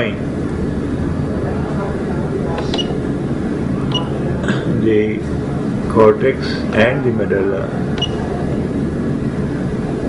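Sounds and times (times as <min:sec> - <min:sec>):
low hum of running equipment: 0:00.0 - 0:10.0.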